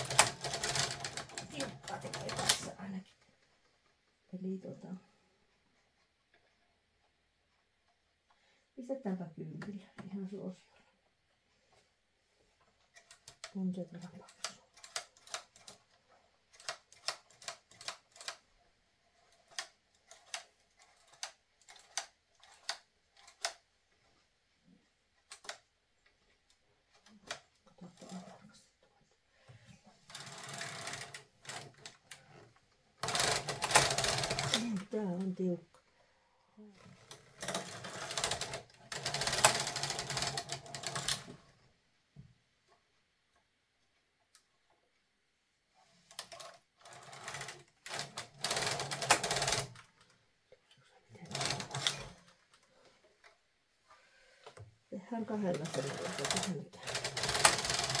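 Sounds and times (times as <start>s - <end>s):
knitting carriage rasping across bed: 0.0s - 5.0s, 11.5s - 29.0s, 29.6s - 36.0s, 36.6s - 41.7s, 45.8s - 50.1s, 51.0s - 58.0s.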